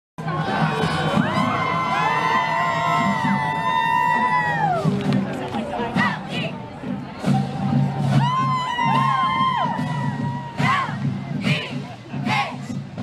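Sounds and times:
crowd cheering: 0.2 - 12.6
marching band playing: 0.2 - 13.0.

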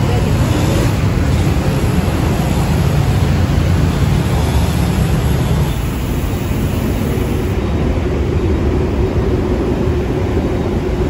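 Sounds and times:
dense road traffic rumble: 0.0 - 11.0
steady engine hum: 0.0 - 11.0.

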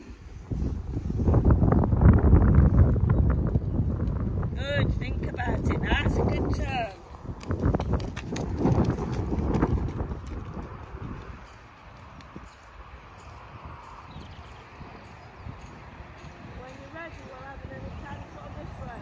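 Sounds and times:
horse hoofbeats on loose chips: 7.3 - 12.7.

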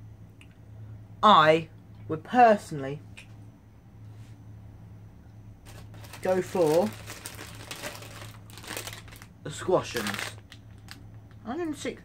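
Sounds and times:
plastic packet crinkling: 5.6 - 11.0.

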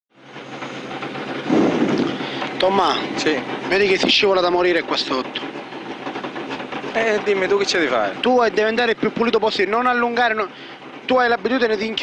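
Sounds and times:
wind rumble: 1.1 - 4.4
racing car engine: 1.2 - 11.9.

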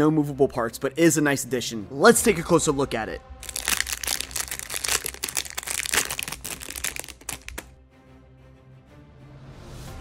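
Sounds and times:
plastic sleeve crinkling: 3.4 - 7.7.

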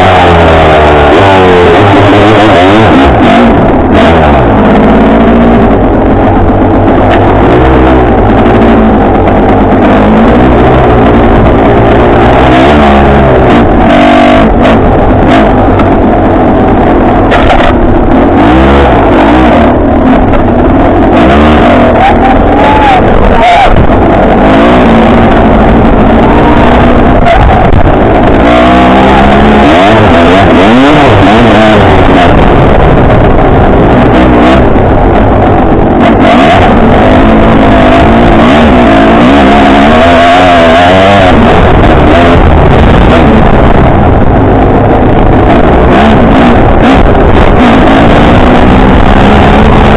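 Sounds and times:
dirt bike engine revving: 0.0 - 49.9.

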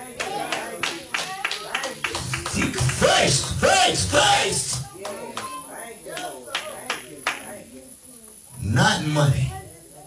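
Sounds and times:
congregation clapping: 0.0 - 5.5, 6.1 - 7.5
voices calling out: 0.2 - 5.8.

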